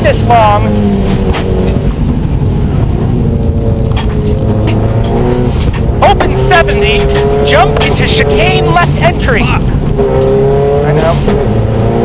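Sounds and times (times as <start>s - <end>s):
car engine running: 0.0s - 12.0s
gravel road noise: 0.0s - 12.0s.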